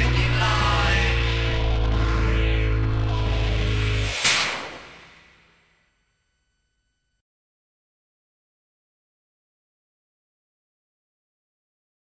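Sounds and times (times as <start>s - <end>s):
band playing: 0.0s - 4.2s.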